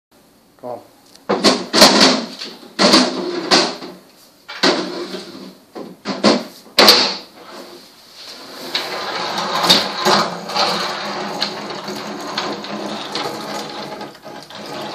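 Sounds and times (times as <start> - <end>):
rough rumbling noise: 8.3 - 14.9
loud clatters: 8.6 - 14.9.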